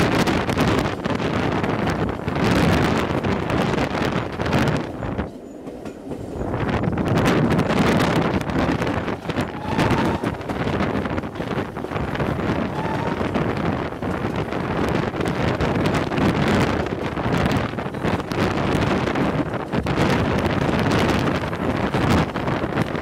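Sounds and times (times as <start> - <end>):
train wheels rumbling on rails: 0.0 - 23.0
wind buffeting microphone: 0.0 - 23.0.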